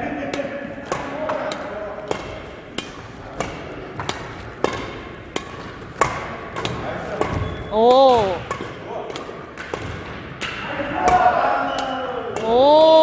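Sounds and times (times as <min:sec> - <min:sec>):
rackets hitting shuttlecock: 0:00.1 - 0:13.0.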